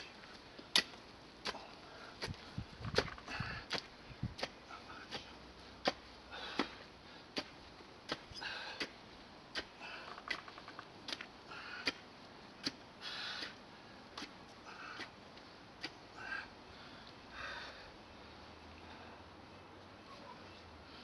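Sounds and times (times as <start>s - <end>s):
spade digging through soil: 0.6s - 12.0s.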